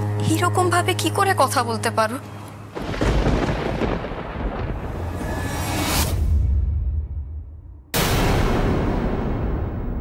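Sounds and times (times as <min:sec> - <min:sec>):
thunder-like boom and rumble: 0:02.8 - 0:10.0.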